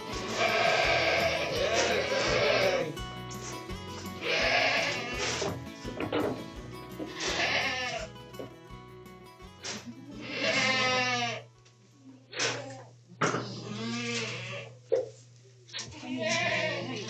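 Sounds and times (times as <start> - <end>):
goats bleating: 0.0 - 6.0, 7.0 - 8.1, 10.1 - 11.5, 13.4 - 14.7, 15.9 - 17.0.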